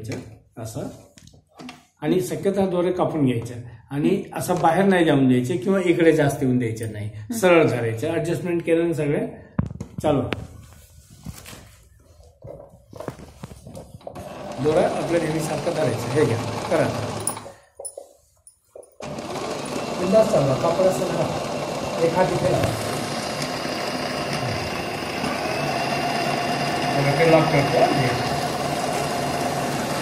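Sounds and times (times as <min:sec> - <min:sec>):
electric sewing machine running: 0:14.2 - 0:17.5, 0:19.0 - 0:30.0.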